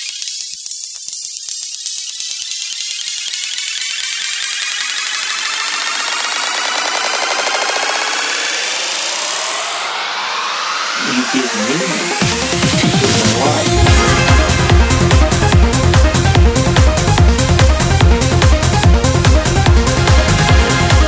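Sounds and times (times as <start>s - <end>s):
electronic trance music: 0.0s - 21.0s
rising noise sweep: 3.7s - 13.9s.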